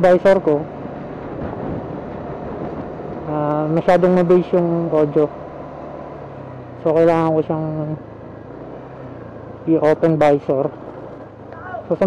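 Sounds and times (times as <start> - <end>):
road noise: 0.0 - 12.0
scooter engine: 0.0 - 12.0
wind rushing over microphone: 0.2 - 4.4.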